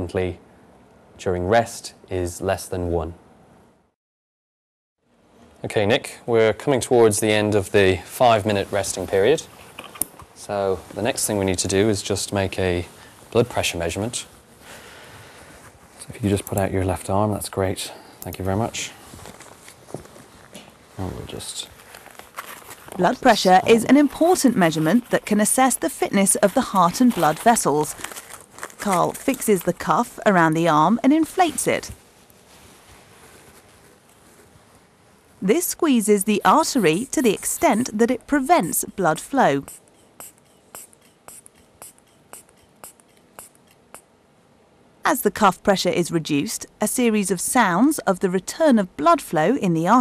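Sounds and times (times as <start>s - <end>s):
fabric cuff rustling: 19.0s - 25.4s, 26.0s - 35.0s
rubber bulb puffing air: 39.6s - 44.1s.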